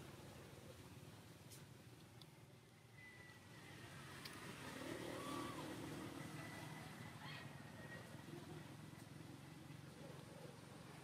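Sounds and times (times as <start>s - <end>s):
distant vehicle passing: 3.0s - 11.0s.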